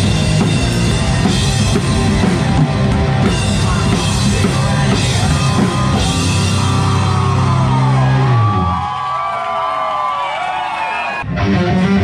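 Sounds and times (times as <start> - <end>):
rock band playing loud chord: 0.0 - 8.8
crowd whooping and shouting: 5.3 - 11.6.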